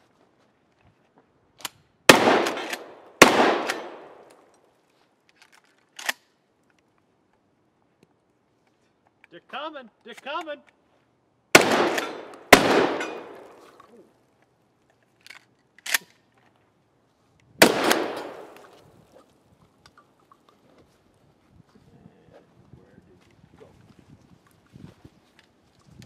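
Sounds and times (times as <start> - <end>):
shotgun reloading clicks: 1.6 - 4.6, 5.4 - 6.3, 11.6 - 13.8, 15.2 - 16.2, 17.6 - 18.8
shotgun shots echoing: 2.1 - 4.4, 11.5 - 13.8, 17.6 - 18.8.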